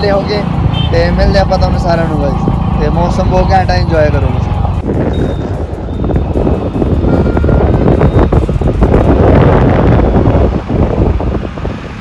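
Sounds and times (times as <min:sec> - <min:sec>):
passing traffic: 0:00.0 - 0:12.0
vehicle running noise: 0:00.0 - 0:12.0
wind buffeting microphone: 0:00.0 - 0:12.0.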